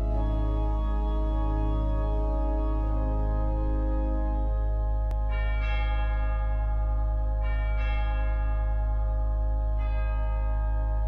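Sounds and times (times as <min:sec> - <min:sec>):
sustained drone: 0:00.0 - 0:11.0.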